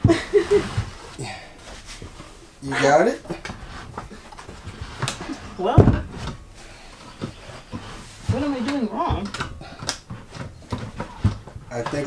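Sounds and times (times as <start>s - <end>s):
chair knocking and rubbing: 0.0s - 12.0s.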